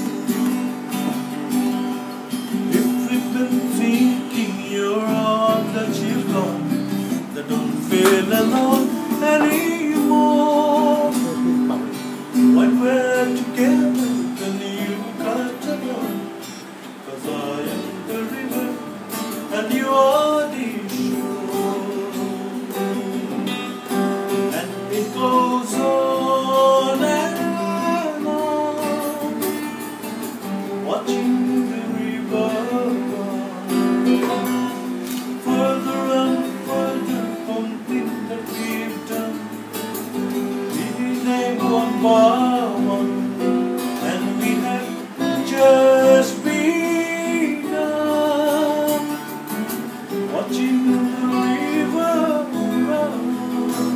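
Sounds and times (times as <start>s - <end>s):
acoustic guitar strumming: 0.0s - 53.9s
man singing: 2.3s - 29.8s, 30.5s - 39.7s, 40.4s - 53.9s.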